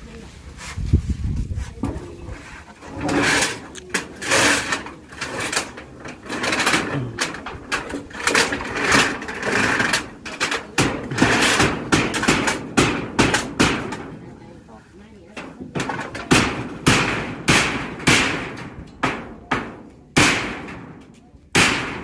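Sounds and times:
roofing sheet scraping on wood: 0.5 - 19.8
sharp knocks: 4.2 - 14.1, 15.6 - 22.0.

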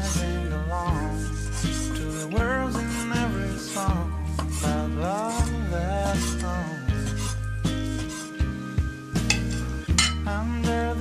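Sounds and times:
background song with singing: 0.0 - 7.3, 10.0 - 11.0.

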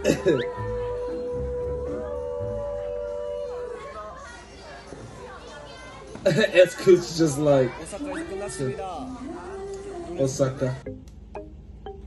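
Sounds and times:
man's mock crying wail: 0.0 - 0.6.

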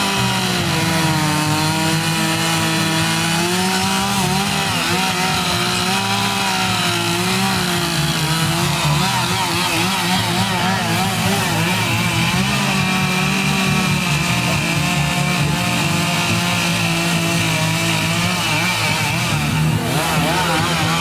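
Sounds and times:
chainsaw engine running: 0.0 - 21.0.

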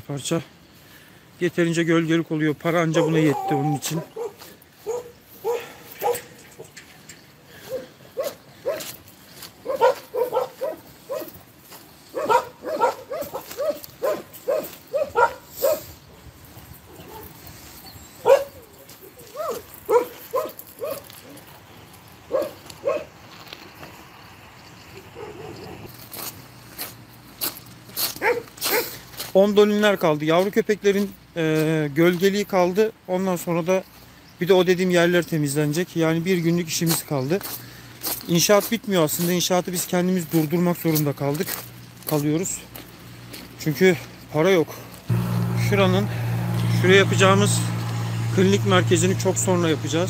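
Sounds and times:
dogs barking: 2.9 - 6.8, 7.5 - 9.0, 9.6 - 11.4, 12.1 - 16.2, 16.8 - 17.4, 18.0 - 21.4, 22.3 - 23.2, 25.1 - 25.9, 28.1 - 29.0.

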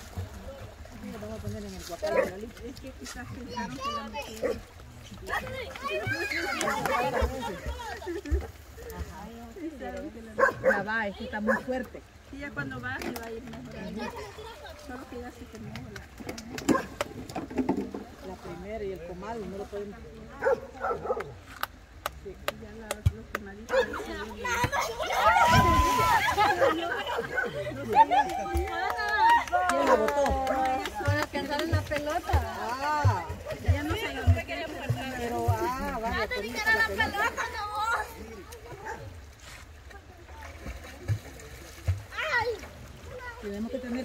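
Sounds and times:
river water splashing: 0.0 - 44.0
women talking: 1.0 - 17.0, 22.2 - 39.1
dog barking: 10.4 - 11.7, 16.7 - 16.9, 20.4 - 21.3.

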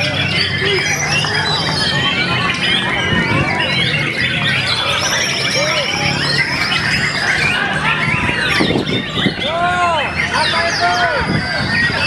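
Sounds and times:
many songbirds chirping: 0.0 - 12.0
songbird singing: 0.0 - 12.0.

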